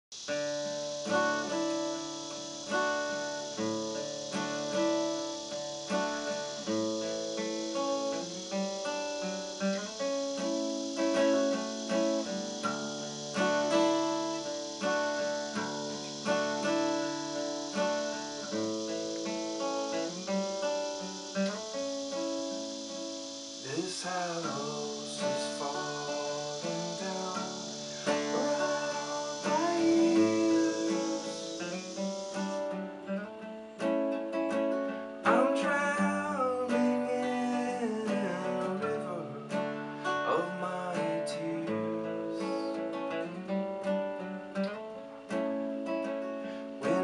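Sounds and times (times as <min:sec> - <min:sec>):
fingerpicked acoustic guitar: 0:00.1 - 0:47.0.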